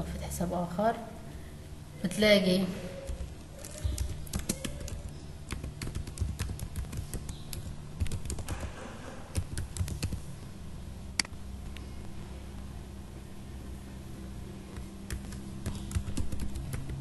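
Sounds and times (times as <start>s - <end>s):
keyboard typing: 3.0s - 10.2s, 14.7s - 17.0s.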